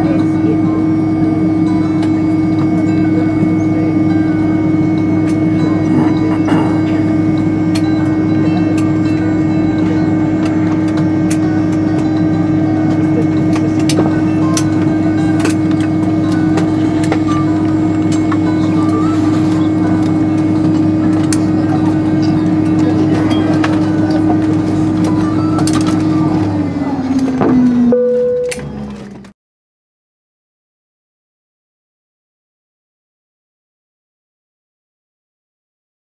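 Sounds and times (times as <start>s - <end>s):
jet engines idling hum: 0.0s - 29.3s.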